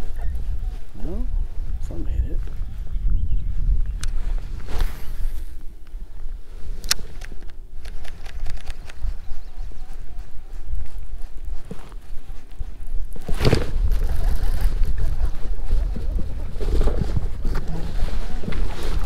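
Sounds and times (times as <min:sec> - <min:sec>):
wind rumbling on microphone: 0:00.0 - 0:19.0
fishing rod rustle: 0:03.5 - 0:19.0.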